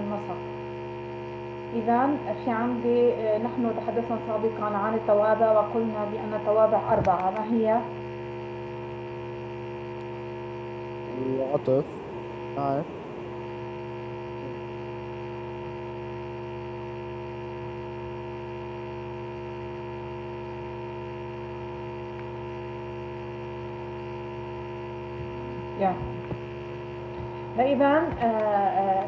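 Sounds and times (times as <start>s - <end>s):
steady electrical hum: 0.0s - 29.0s.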